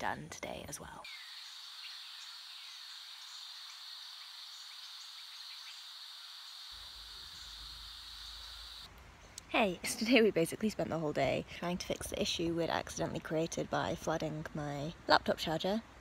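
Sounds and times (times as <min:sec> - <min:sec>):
light hiss: 0:01.0 - 0:09.8
insects chorus shrill drone: 0:01.1 - 0:08.9.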